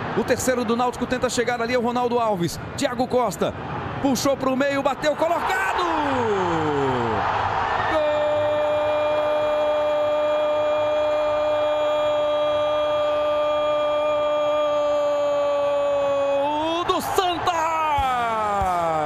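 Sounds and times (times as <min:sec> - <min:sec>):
stadium crowd roar: 0:00.0 - 0:02.0, 0:03.5 - 0:19.0.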